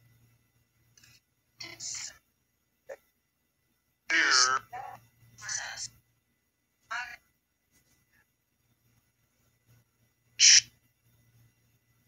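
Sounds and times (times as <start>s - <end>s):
faint low hum: 0.0s - 12.0s
radio static burst: 10.4s - 10.8s.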